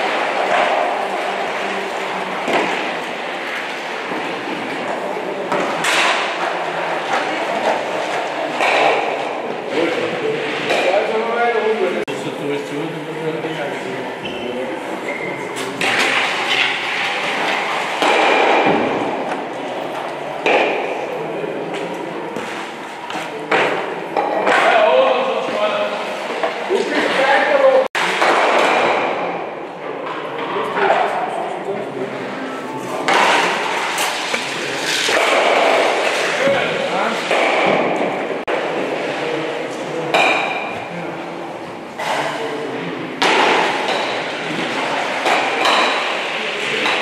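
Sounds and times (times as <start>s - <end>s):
background talk: 0.0s - 47.0s.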